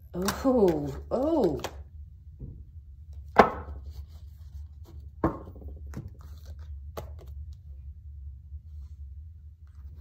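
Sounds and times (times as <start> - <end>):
cards knocking on tabletop: 3.3 - 3.9, 5.2 - 6.2
faint card handling: 5.9 - 7.6.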